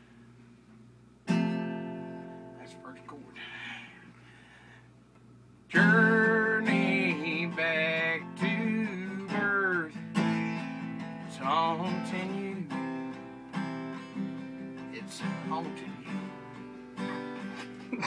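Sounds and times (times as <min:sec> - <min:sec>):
acoustic guitar strumming: 0:01.2 - 0:03.4, 0:05.7 - 0:18.0
man singing: 0:05.7 - 0:12.8.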